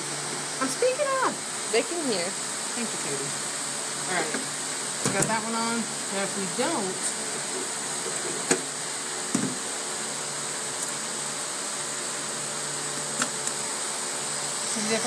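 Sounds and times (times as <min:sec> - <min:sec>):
electric fan running: 0:00.0 - 0:15.0.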